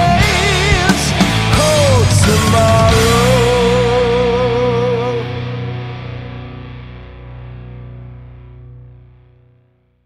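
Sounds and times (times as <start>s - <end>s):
distorted electric guitar chord ringing: 0.0s - 9.8s.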